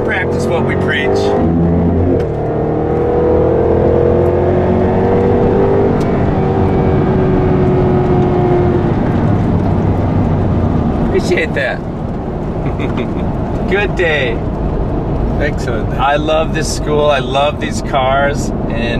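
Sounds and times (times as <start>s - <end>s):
car engine from inside cabin: 0.0s - 18.9s
road noise: 0.0s - 18.9s.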